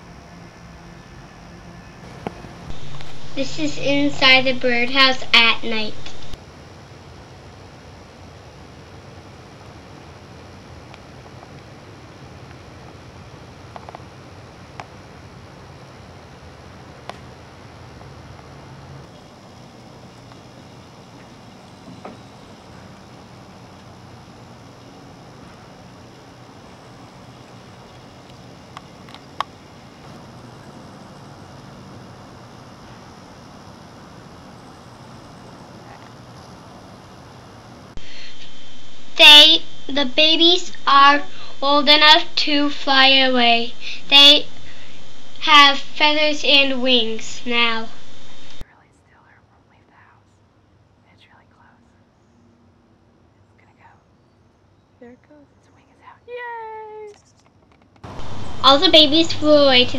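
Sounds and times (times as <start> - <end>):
low hum: 0.0 - 56.2, 58.0 - 59.9
faint background hiss: 0.0 - 57.4, 58.0 - 59.9.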